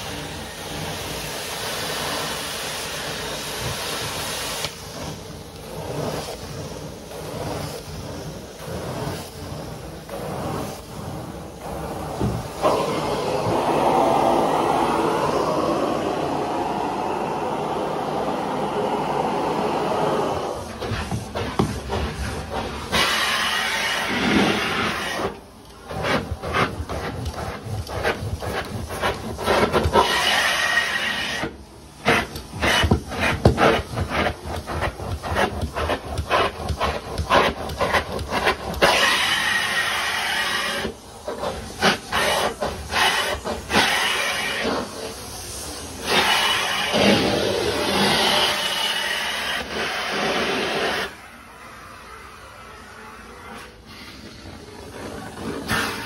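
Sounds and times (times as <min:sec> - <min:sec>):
stair tool suction on carpet: 0:00.0 - 0:51.3, 0:53.6 - 0:56.0
vacuum hissing through hose: 0:00.0 - 0:56.0.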